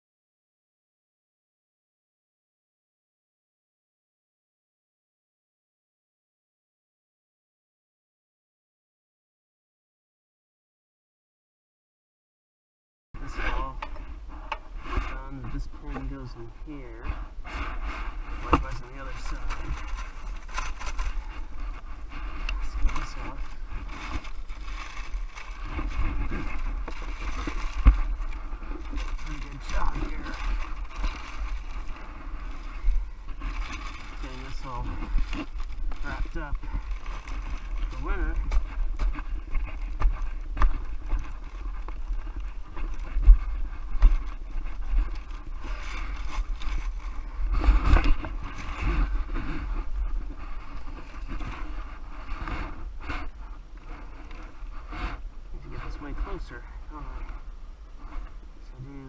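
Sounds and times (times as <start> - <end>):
steady low rumble: 13.2 - 59.0
plastic tarp rustling: 14.8 - 57.3.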